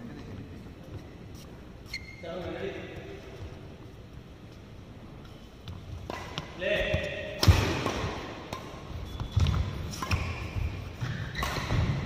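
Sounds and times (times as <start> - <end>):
racket striking shuttlecock: 6.0 - 12.0.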